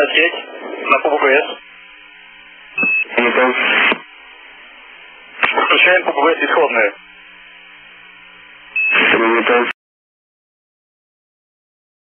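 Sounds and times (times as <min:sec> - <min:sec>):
voice over radio: 0:00.0 - 0:01.6, 0:03.0 - 0:04.0, 0:05.4 - 0:07.0, 0:09.0 - 0:09.8
radio hiss: 0:00.0 - 0:09.8.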